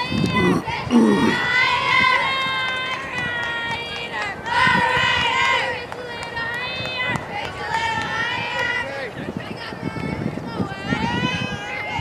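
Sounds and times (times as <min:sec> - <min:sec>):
girls chanting a cheer: 0:00.0 - 0:12.0.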